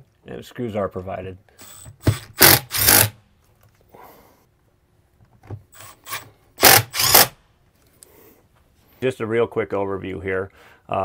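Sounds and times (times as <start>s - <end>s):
cordless driver running a screw: 1.6s - 3.2s, 5.8s - 7.4s.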